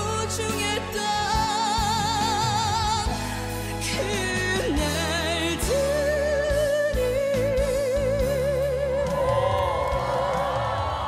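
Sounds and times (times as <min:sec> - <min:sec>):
band accompaniment: 0:00.0 - 0:11.0.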